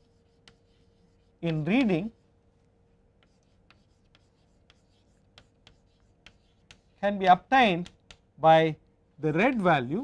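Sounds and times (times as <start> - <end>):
chalk writing on chalkboard: 0.0 - 2.4, 3.2 - 7.2.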